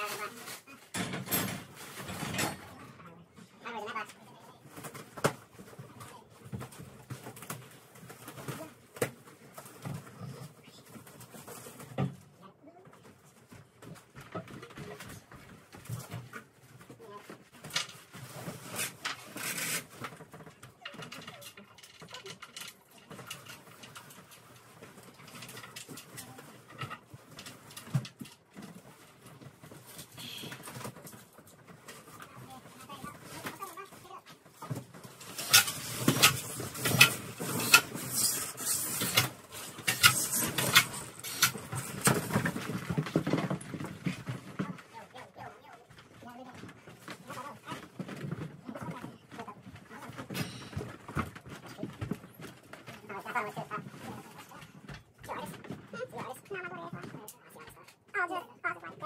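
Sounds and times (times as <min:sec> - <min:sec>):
wooden parts knocking and clattering: 0:00.0 - 0:03.0, 0:04.0 - 0:58.2.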